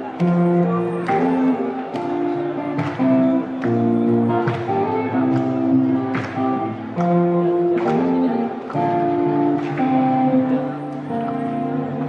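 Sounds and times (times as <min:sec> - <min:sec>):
electric guitar chords ringing: 0:00.0 - 0:12.0.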